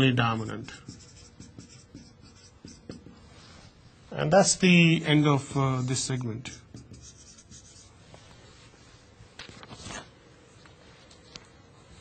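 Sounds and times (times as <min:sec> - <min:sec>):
marker writing on whiteboard: 0:00.0 - 0:03.9, 0:05.8 - 0:08.3.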